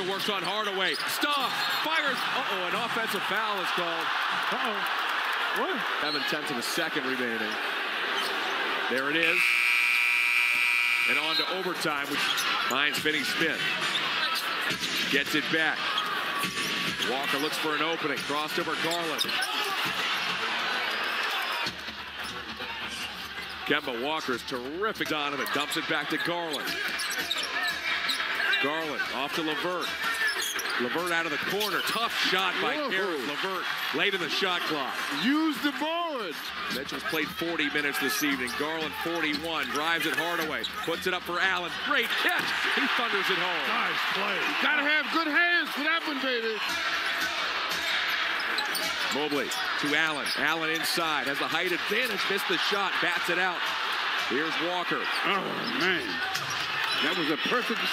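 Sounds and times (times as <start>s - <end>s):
arena crowd noise: 0.0s - 57.9s
faint court sounds: 0.0s - 57.9s.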